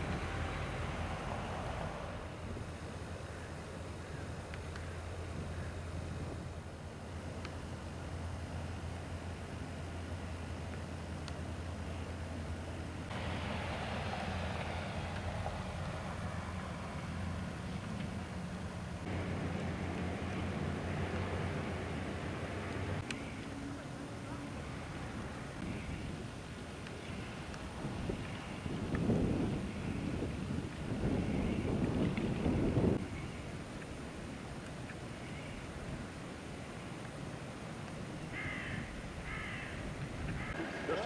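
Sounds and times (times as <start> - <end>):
traffic rumble: 0.0 - 41.0
wind gusting on the microphone: 5.1 - 6.8, 24.6 - 36.6, 37.2 - 41.0.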